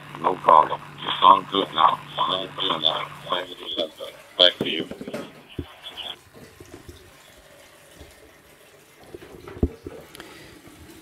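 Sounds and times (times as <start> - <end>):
radio transmission through speaker: 0.0 - 6.9.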